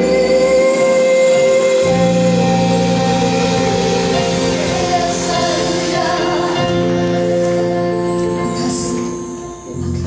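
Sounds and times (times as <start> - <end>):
sustained keyboard chord: 1.7 - 10.0.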